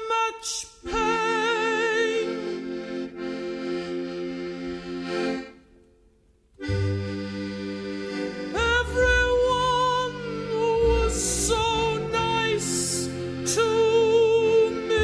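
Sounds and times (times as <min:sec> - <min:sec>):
accordion playing chords: 0:00.0 - 0:15.0.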